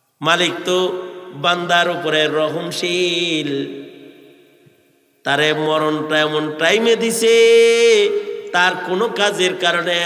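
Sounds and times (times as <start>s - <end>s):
man chanting a sermon through pa: 0.2s - 4.0s, 5.3s - 10.0s.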